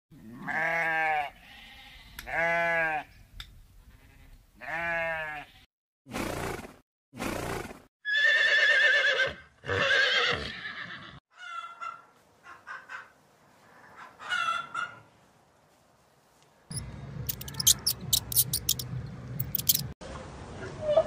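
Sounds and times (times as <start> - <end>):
sheep bleating: 0.3 - 3.1, 3.9 - 5.7
horse whinnying: 8.1 - 11.2.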